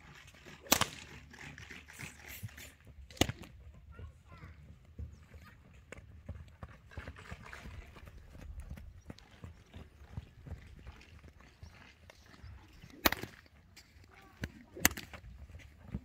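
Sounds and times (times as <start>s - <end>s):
hoofbeats trotting on sand: 0.0s - 16.0s.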